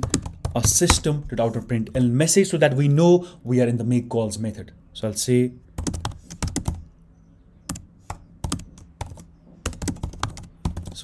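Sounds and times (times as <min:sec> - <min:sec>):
keyboard typing: 0:00.0 - 0:01.1, 0:05.8 - 0:06.9, 0:07.7 - 0:11.0.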